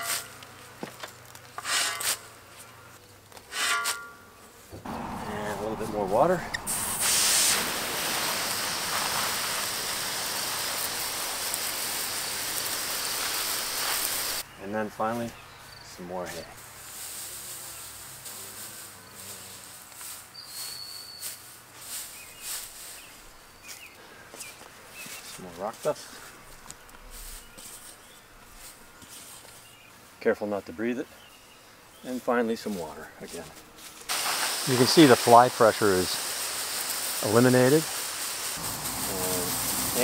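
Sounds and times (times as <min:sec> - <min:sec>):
water spray hissing: 0:04.8 - 0:14.4, 0:34.1 - 0:40.0.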